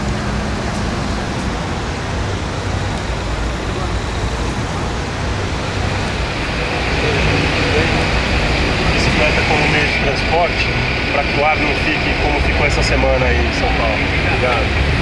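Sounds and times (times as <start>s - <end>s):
car engines running: 0.0s - 15.0s
voices: 0.0s - 15.0s.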